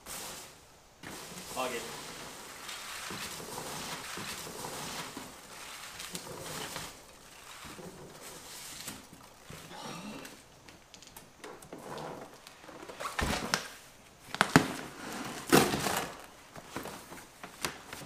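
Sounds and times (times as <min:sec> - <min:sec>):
foam packing peanuts rustling: 0:00.0 - 0:10.6, 0:11.2 - 0:18.0.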